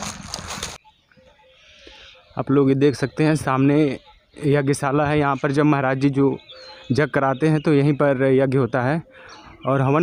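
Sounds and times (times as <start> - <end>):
footsteps crunching dry leaves: 0.0 - 0.8.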